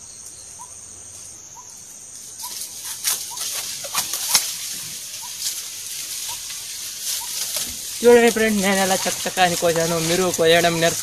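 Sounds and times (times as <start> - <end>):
insects shrilling: 0.0 - 11.0.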